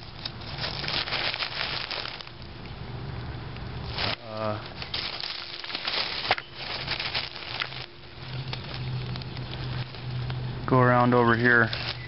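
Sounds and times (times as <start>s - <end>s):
dry leaves rustling: 0.0s - 12.0s.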